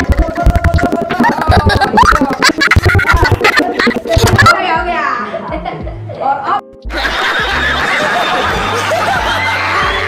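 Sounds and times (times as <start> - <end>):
background music: 0.0 - 10.0
group laughter: 1.1 - 4.5, 6.9 - 10.0.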